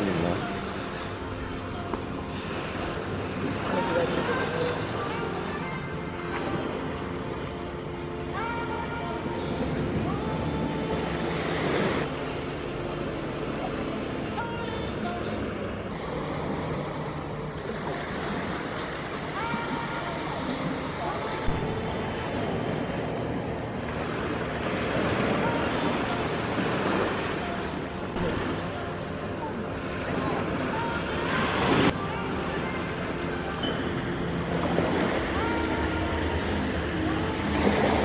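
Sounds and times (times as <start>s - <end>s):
faint voices: 0.0s - 38.0s
small waves lapping on shore: 0.0s - 38.0s.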